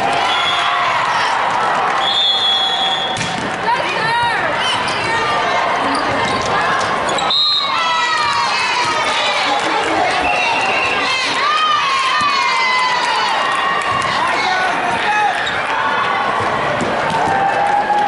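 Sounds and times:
crowd chatter: 0:00.0 - 0:18.0
players shouting: 0:00.0 - 0:18.0
high whistle: 0:02.0 - 0:03.2, 0:07.2 - 0:07.8
volleyball hits: 0:02.9 - 0:03.7, 0:16.3 - 0:17.7
shoes squeaking on court: 0:05.8 - 0:07.3.

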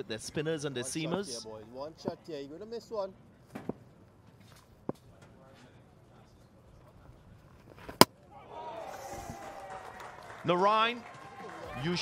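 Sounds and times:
crowd shouting and cheering: 0:08.3 - 0:12.0.

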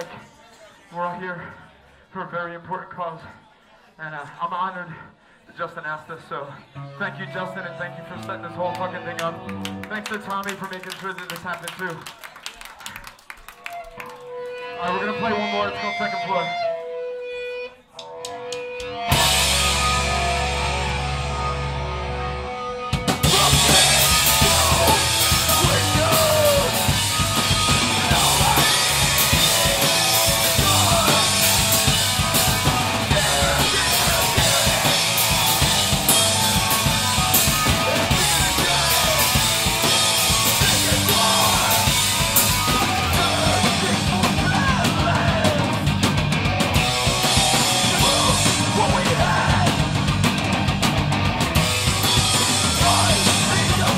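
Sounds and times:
distorted electric guitars: 0:14.2 - 0:53.9
drums: 0:18.0 - 0:53.9
shouted vocals: 0:23.2 - 0:45.9, 0:47.3 - 0:50.1, 0:52.6 - 0:53.9.

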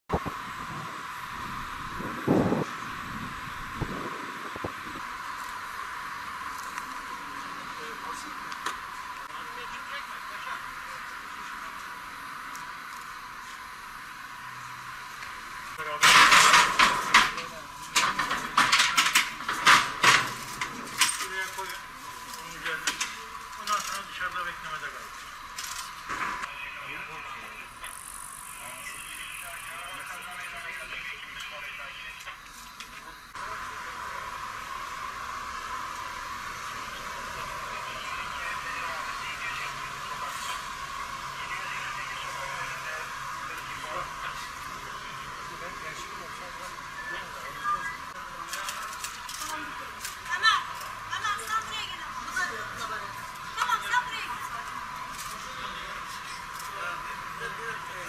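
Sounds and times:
sharp knocks and clatter: 0:16.0 - 0:21.2.

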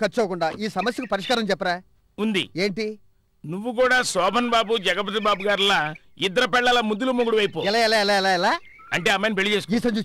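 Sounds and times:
person speaking: 0:00.0 - 0:10.0
drawn-out quavering syllable: 0:03.9 - 0:09.7.

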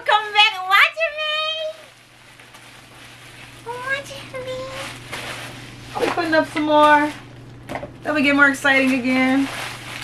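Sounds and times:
steady low hum: 0:00.0 - 0:10.0
faint rustling: 0:08.8 - 0:10.0.

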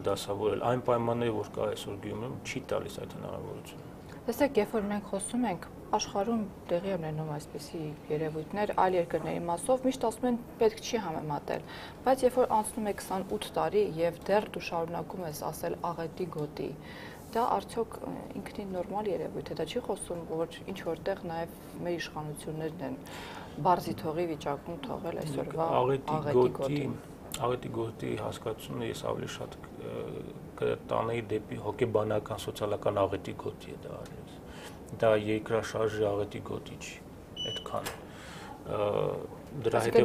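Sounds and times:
man speaking: 0:00.0 - 0:03.8, 0:25.2 - 0:38.0, 0:38.6 - 0:40.0
woman talking: 0:04.2 - 0:26.7, 0:39.8 - 0:40.0
short high electronic beep: 0:37.4 - 0:37.7.

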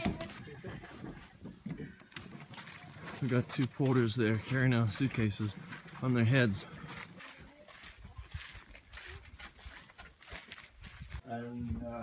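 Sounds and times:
footsteps on gravel: 0:00.0 - 0:11.3.

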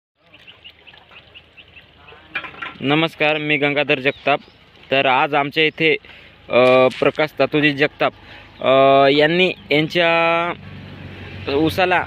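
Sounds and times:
outdoor background noise: 0:00.2 - 0:12.0.

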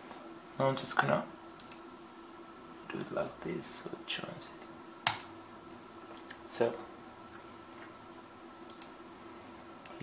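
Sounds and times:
faint steady hum: 0:00.0 - 0:10.0
computer mouse clicks: 0:01.6 - 0:01.8, 0:05.1 - 0:05.3, 0:08.7 - 0:09.0.

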